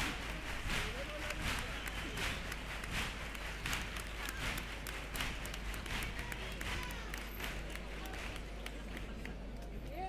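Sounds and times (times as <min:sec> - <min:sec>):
audience clapping: 0:00.0 - 0:10.0.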